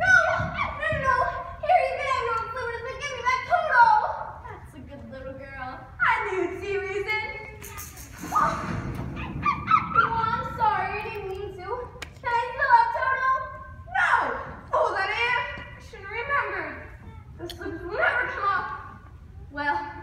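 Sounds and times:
low noise: 0:00.0 - 0:20.0
young people speaking: 0:00.0 - 0:20.0.

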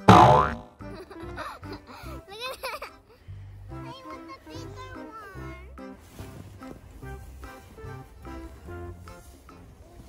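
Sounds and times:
cartoon boing spring effect: 0:00.0 - 0:00.8
light children's music: 0:00.0 - 0:10.0.

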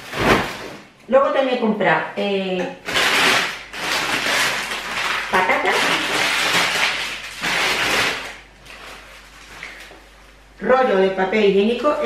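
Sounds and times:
plastic packaging crinkling: 0:00.0 - 0:00.9, 0:02.8 - 0:10.3.

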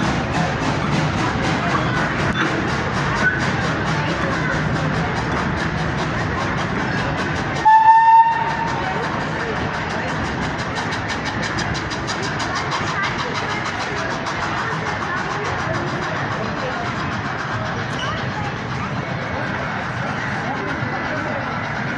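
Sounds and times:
steam locomotive chuffing: 0:00.0 - 0:21.9
train whistle blast: 0:07.6 - 0:08.7.

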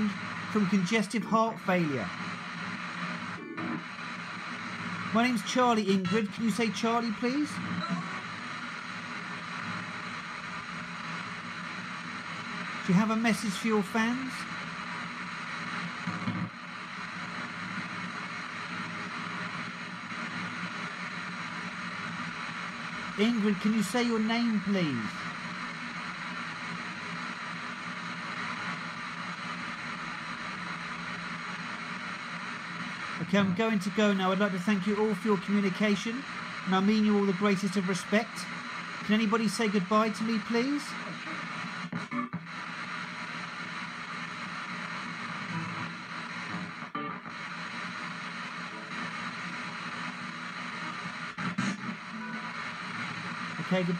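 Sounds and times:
radio static scanning: 0:00.0 - 0:53.9.

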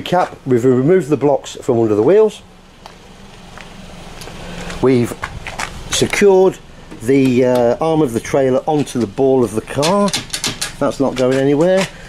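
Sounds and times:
person speaking: 0:04.3 - 0:12.0.

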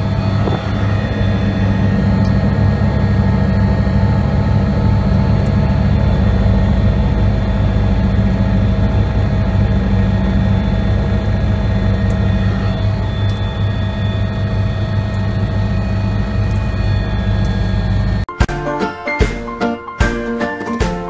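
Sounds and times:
helicopter engine and rotor drone: 0:00.0 - 0:18.3
turbine whine: 0:00.0 - 0:18.5.

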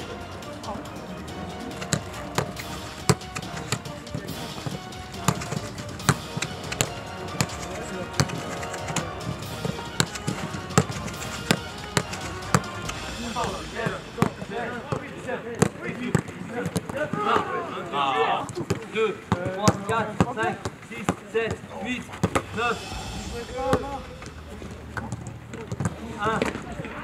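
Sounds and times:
footballs being kicked: 0:01.7 - 0:13.0, 0:14.2 - 0:17.5, 0:18.4 - 0:22.5, 0:25.0 - 0:26.6.

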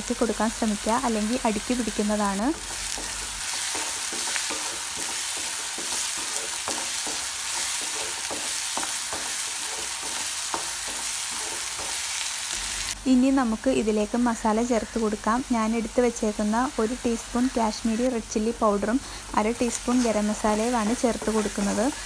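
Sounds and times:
onions sizzling in oil: 0:00.0 - 0:22.0
spatula scraping and tapping pan: 0:01.8 - 0:12.2.

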